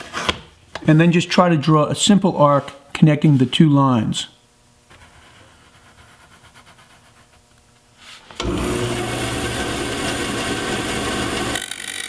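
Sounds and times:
low room hum: 0.0 - 12.0
pencil scratching on wood: 4.9 - 7.4.

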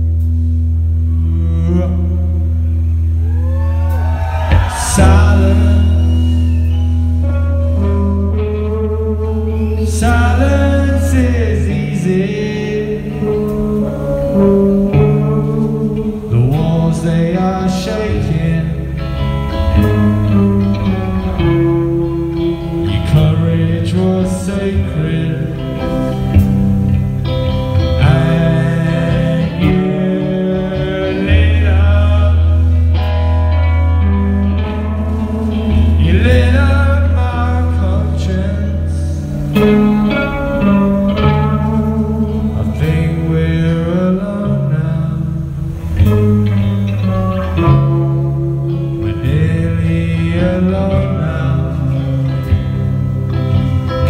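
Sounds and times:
electric guitar chords: 0.0 - 54.0
heavy bass: 0.0 - 54.0
rock band playing live: 0.0 - 54.0.

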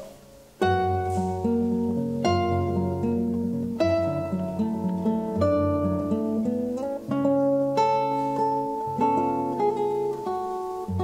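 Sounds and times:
classical guitars playing: 0.0 - 11.0.

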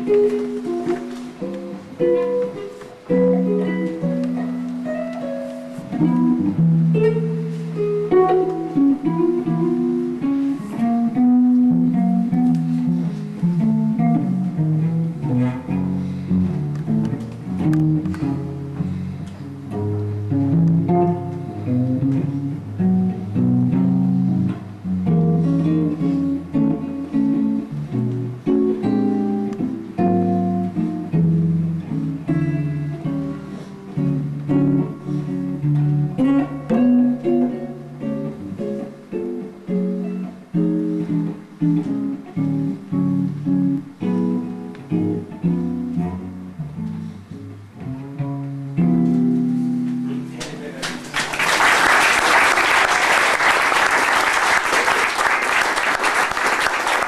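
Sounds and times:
archtop guitar playing chords: 0.0 - 50.4.

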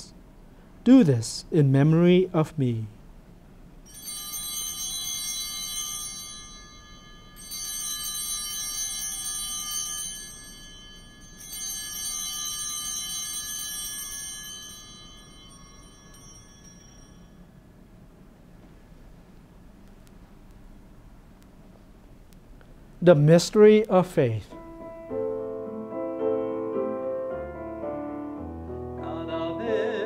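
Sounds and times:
altar bells ringing: 3.9 - 17.9.

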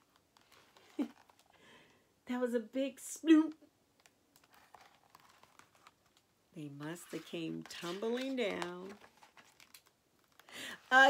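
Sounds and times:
book page turning: 0.0 - 1.5, 4.0 - 11.0
paper rustling: 0.0 - 1.6, 4.4 - 11.0.

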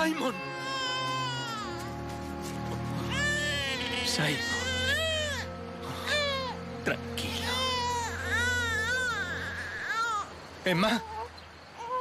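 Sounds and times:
background music: 0.0 - 10.6
baby crying: 0.3 - 2.1, 3.0 - 6.7, 7.4 - 10.3, 10.9 - 12.0.

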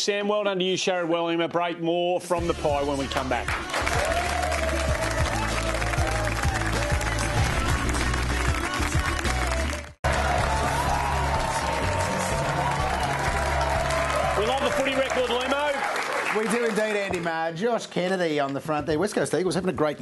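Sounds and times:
tv theme music: 2.3 - 17.4
audience applauding and cheering: 3.0 - 17.6.

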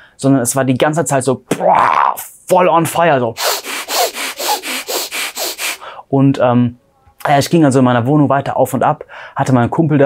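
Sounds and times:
man panting rapidly: 3.4 - 6.0.

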